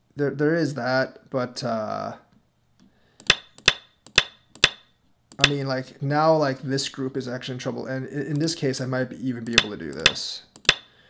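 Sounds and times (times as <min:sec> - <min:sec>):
clacking stone placement effects: 0:05.4 - 0:05.6, 0:09.6 - 0:10.9.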